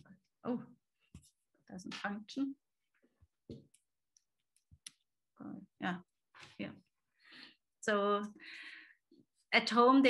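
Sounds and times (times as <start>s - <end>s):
woman speaking: 1.7s - 2.6s, 7.8s - 8.4s, 9.5s - 10.0s.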